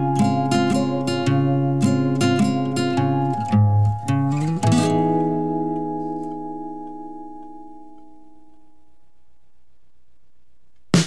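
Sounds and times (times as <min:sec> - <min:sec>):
guitar final chord ringing: 0:00.0 - 0:08.9.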